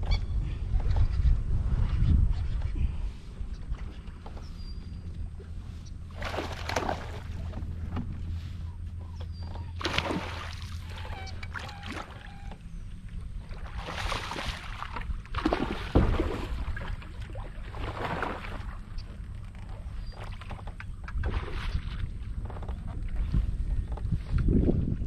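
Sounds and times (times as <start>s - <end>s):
steady low rumble: 0.0s - 25.0s
water splashing along hull: 2.6s - 25.0s.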